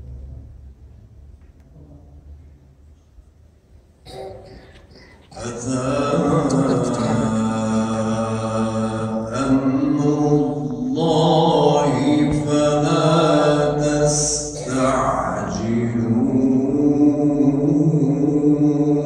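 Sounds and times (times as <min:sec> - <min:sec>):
man chanting into a microphone: 0:05.3 - 0:19.0.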